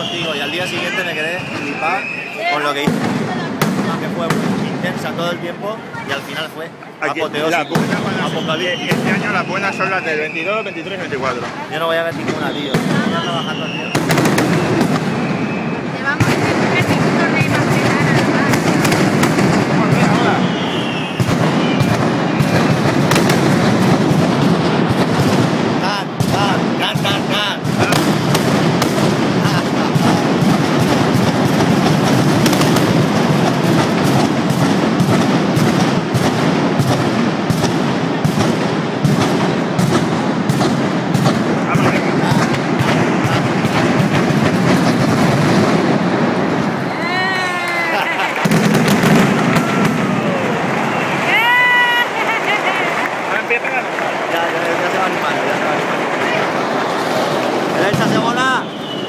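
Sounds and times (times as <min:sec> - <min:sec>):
barrage of firecrackers: 0:00.0 - 0:59.0.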